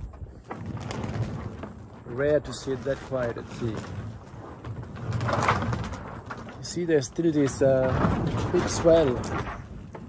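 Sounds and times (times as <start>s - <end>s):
sail and rigging shaking: 0.0s - 10.0s.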